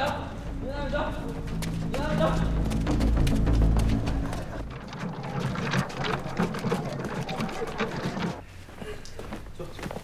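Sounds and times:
footsteps on paved street: 0.0 - 10.0
wheels on paved street: 2.8 - 8.5.

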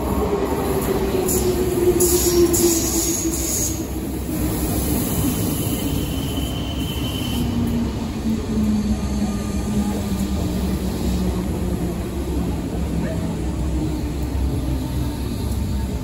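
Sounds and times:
wheels rumbling on rail: 0.0 - 16.0.

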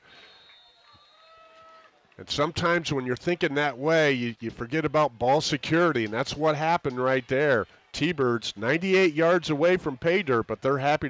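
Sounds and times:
low hiss: 1.9 - 11.0.

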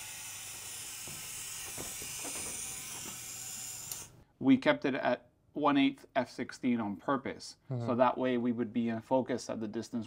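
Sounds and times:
camera lens drum whirring: 0.7 - 4.1.

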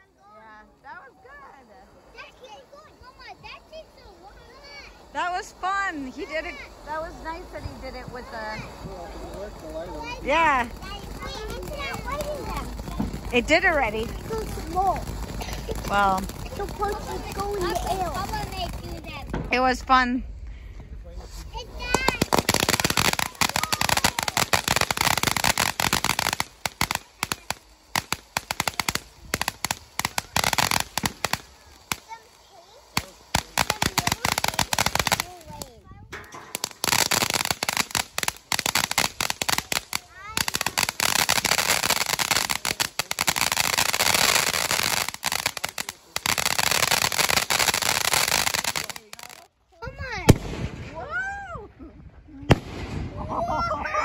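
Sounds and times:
firework fountain hissing and crackling: 0.0 - 51.4, 52.2 - 54.0.

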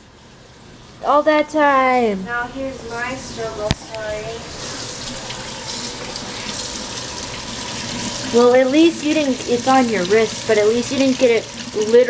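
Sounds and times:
faucet running into steel sink: 4.5 - 12.0.

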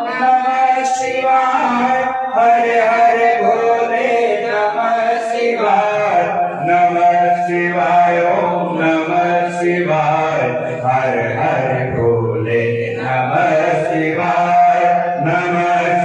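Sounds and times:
mantras chanted: 0.0 - 16.0.

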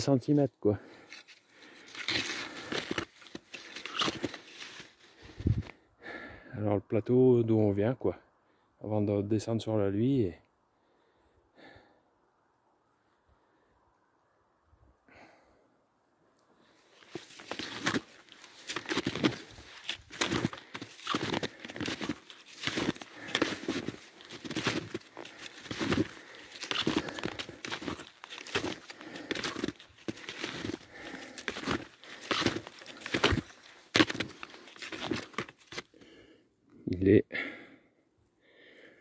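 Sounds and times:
snowshoe steps crunching in snow: 1.8 - 5.7, 17.0 - 35.9.

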